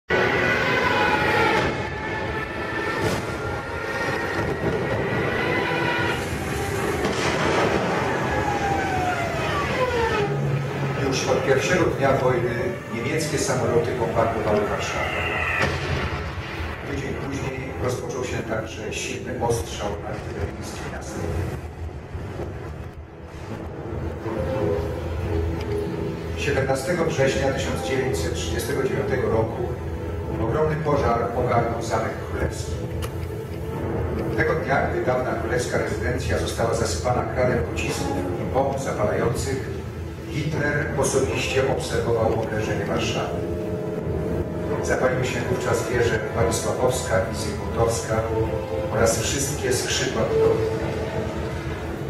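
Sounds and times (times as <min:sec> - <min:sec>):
propeller aircraft engines droning: 0:00.1 - 0:52.0.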